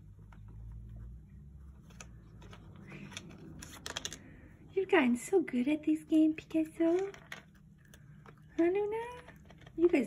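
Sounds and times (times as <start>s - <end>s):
plastic clicks and rattles: 6.8s - 10.0s.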